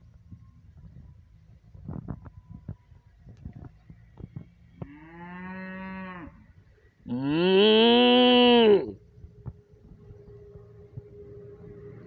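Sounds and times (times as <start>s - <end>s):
cattle mooing: 7.1s - 8.9s.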